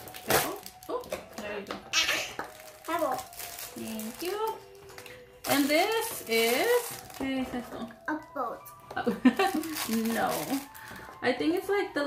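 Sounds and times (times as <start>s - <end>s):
plastic bag crinkling: 0.0s - 8.1s, 9.1s - 11.2s
people talking: 3.8s - 4.6s, 5.5s - 9.2s, 9.8s - 12.0s
people laughing: 9.1s - 9.7s.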